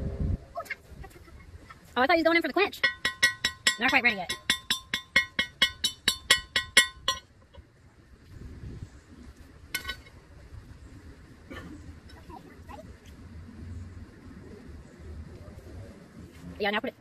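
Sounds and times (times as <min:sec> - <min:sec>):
tongs clinking on anvil: 0:02.7 - 0:07.3
hammer ringing on anvil: 0:02.8 - 0:07.3.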